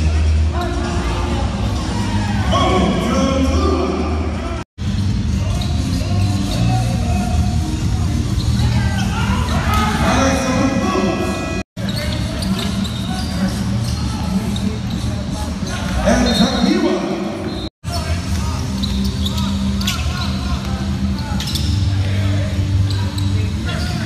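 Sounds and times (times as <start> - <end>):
players' voices: 0.0 - 24.0.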